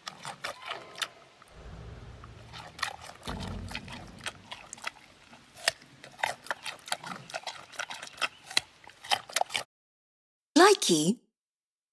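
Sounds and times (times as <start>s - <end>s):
raw carrot crunching: 2.4s - 9.6s.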